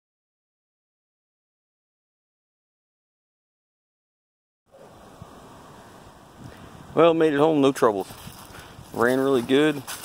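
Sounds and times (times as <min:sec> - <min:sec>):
wind on microphone: 0:04.8 - 0:10.0.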